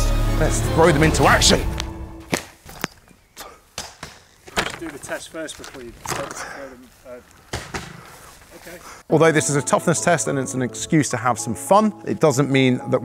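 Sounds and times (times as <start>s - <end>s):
objects thudding onto grass: 2.3s - 3.0s, 3.7s - 6.6s, 7.3s - 8.6s.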